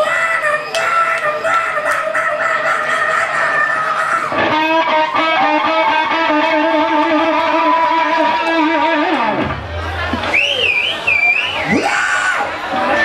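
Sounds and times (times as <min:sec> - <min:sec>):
live rock band: 0:04.2 - 0:11.9.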